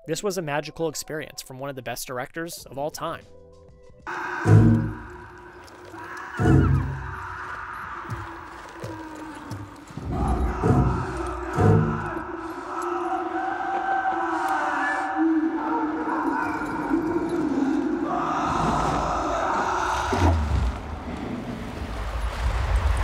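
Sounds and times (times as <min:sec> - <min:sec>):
sustained film score tones: 0:04.1 - 0:08.4.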